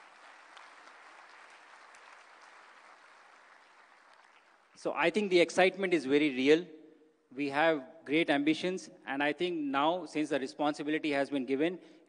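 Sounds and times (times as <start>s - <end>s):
faint audience applause: 0.0s - 4.8s.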